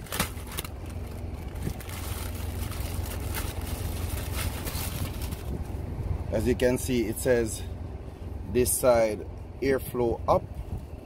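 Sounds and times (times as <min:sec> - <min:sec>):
plastic bag rustling: 0:00.0 - 0:05.7
engine idling: 0:00.0 - 0:11.0.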